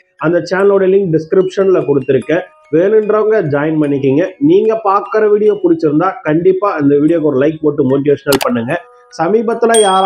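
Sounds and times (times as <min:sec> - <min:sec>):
person narrating: 0:08.3 - 0:08.8, 0:09.8 - 0:10.0.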